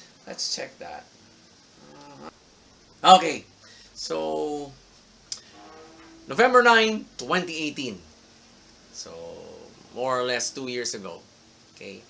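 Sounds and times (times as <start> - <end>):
man humming: 1.8 - 2.3.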